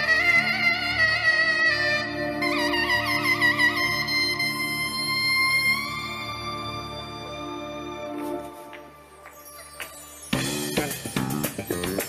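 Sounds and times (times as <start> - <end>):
zurna melody: 0.0 - 11.0.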